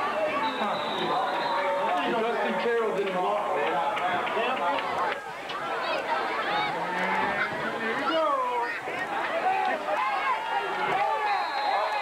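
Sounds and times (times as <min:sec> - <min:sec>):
crowd shouting and chattering: 0:00.0 - 0:12.0.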